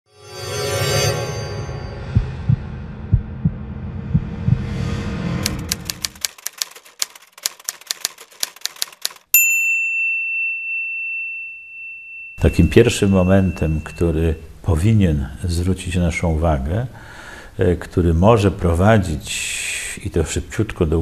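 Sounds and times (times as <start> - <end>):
low rumble: 1.7 - 6.0
typewriter keystrokes: 5.4 - 9.3
typewriter bell ding: 8.7 - 14.4.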